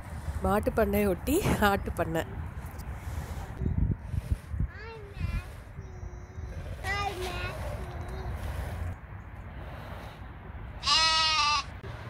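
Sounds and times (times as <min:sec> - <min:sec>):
goat bleating: 0:10.8 - 0:11.7.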